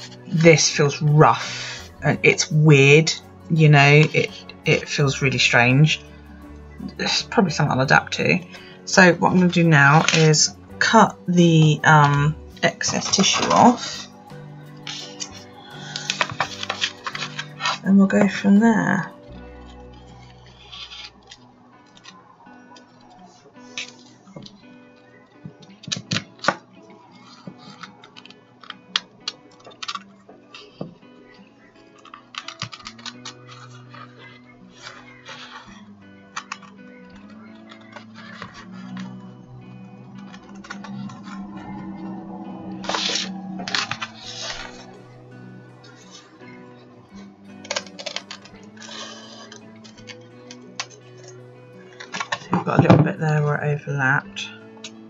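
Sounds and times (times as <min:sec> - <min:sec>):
background music with held tones: 0:00.0 - 0:55.0
scissors snipping tissue and card: 0:09.5 - 0:10.9, 0:12.7 - 0:22.1, 0:25.6 - 0:41.6, 0:42.8 - 0:44.9, 0:47.2 - 0:52.7.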